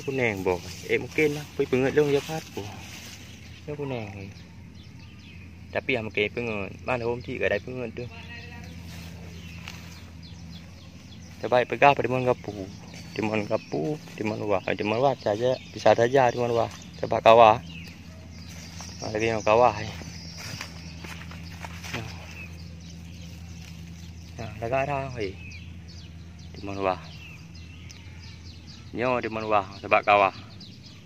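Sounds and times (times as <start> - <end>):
faint rustling: 0.0 - 5.6, 8.2 - 24.5
faint bird chirps: 0.0 - 31.0
low steady hum: 0.0 - 31.0.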